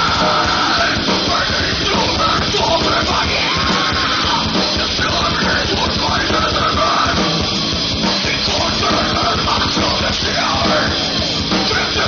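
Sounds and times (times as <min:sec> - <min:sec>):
bass guitar: 0:00.0 - 0:12.0
distorted electric guitars: 0:00.0 - 0:12.0
pounding drums: 0:00.0 - 0:12.0.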